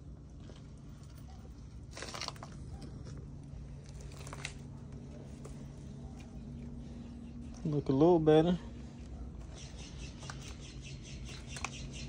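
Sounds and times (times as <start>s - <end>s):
low steady hum: 0.0s - 12.0s
footsteps crunching on needle litter: 0.3s - 7.9s, 8.7s - 12.0s.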